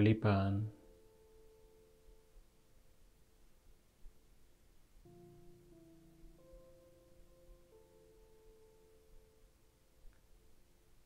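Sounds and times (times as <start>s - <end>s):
soft background music: 0.0s - 3.6s, 5.0s - 11.0s.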